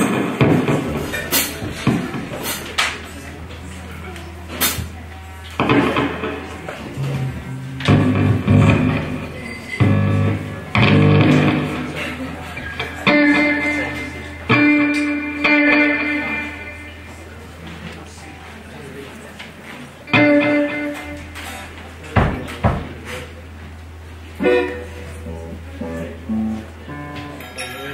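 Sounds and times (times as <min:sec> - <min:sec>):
bass guitar playing: 0:00.0 - 0:17.9, 0:20.0 - 0:27.6
electric guitar playing: 0:00.0 - 0:18.2, 0:20.0 - 0:22.1, 0:23.3 - 0:27.9
low amplifier hum: 0:00.0 - 0:27.6.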